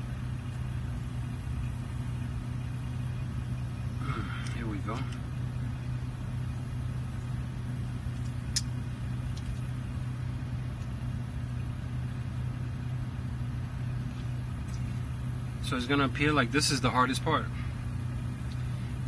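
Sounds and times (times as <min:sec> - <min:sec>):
low mechanical hum: 0:00.0 - 0:19.0
sharp click: 0:08.2 - 0:09.7.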